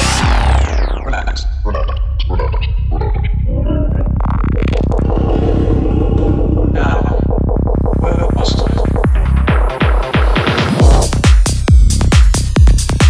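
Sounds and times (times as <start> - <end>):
fast pulsing synth bass: 0.0 - 13.0
rising noise sweep: 3.9 - 9.1
falling-pitch sweeps: 4.0 - 8.0.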